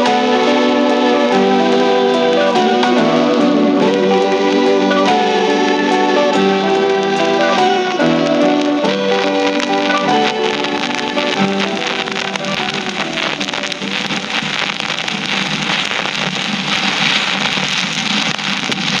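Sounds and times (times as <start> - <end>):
pop song on vinyl: 0.0 - 19.0
record surface hiss: 0.0 - 19.0
vinyl crackle: 0.0 - 19.0.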